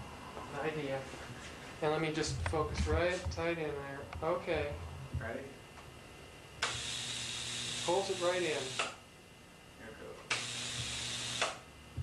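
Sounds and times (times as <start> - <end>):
low hum: 0.0 - 6.6
tesla coil hissing buzz: 1.7 - 9.1, 9.8 - 12.0.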